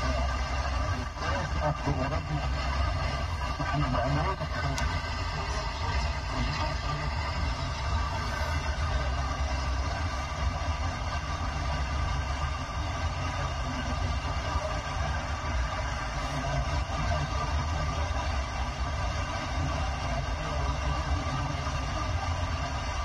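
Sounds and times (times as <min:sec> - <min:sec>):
radio music: 0:00.0 - 0:23.0
radio static noise: 0:00.0 - 0:23.0.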